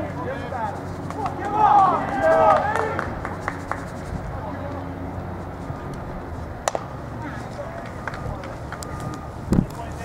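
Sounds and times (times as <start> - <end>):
low ballpark background: 0.0 - 10.0
baseball hitting glove crack: 6.6 - 7.0.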